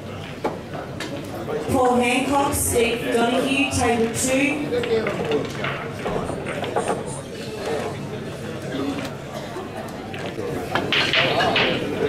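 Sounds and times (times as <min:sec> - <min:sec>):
murmur of voices in a hall: 0:00.0 - 0:12.0.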